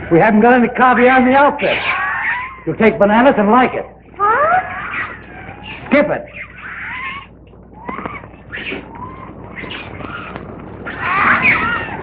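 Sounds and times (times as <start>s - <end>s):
animal cries sliding in pitch: 1.7s - 2.6s, 4.2s - 12.0s.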